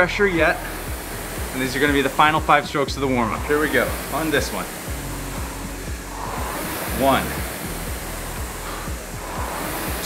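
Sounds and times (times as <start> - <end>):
rowing machine flywheel whooshing: 0.0 - 10.0.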